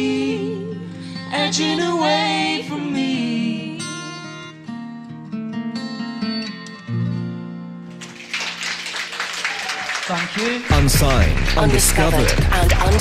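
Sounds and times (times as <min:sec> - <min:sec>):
acoustic guitar with band: 0:00.0 - 0:09.1, 0:10.2 - 0:13.0.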